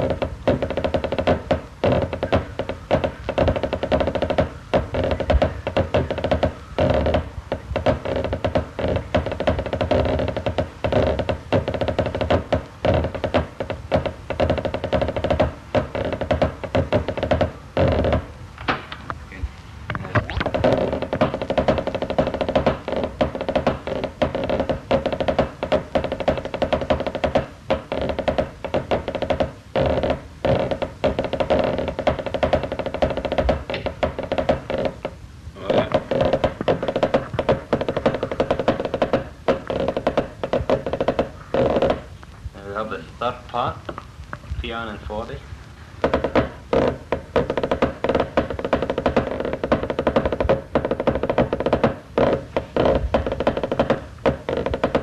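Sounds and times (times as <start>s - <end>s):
snare drumming on practice pad: 0.0s - 18.3s, 20.4s - 42.1s, 46.0s - 55.0s.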